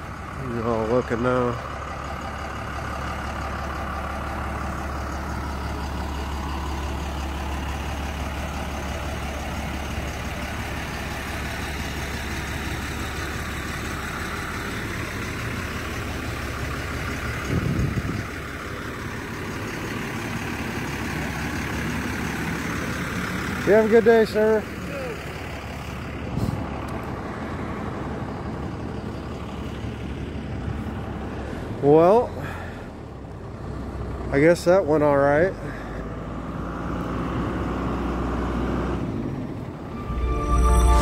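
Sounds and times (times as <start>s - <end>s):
truck engine idling: 0.0s - 37.7s.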